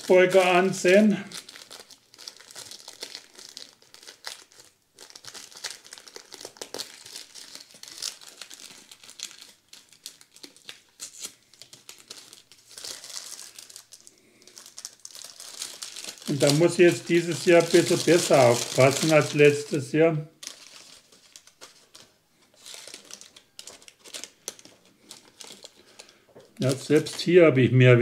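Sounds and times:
paper packet crinkling: 0.0 - 27.4.

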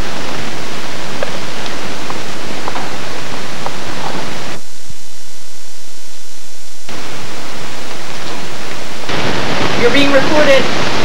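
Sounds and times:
tape hiss and static: 0.0 - 11.0.

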